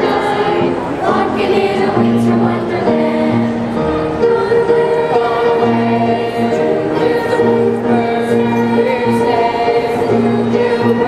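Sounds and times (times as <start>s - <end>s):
children's choir singing: 0.0s - 11.0s.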